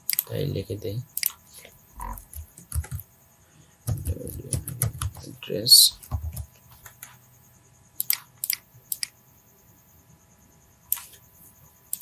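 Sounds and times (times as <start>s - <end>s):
computer mouse and keyboard clicks: 0.0s - 0.3s, 1.2s - 1.4s, 2.0s - 3.0s, 3.9s - 5.3s, 5.9s - 7.2s, 8.0s - 9.2s, 10.9s - 11.2s.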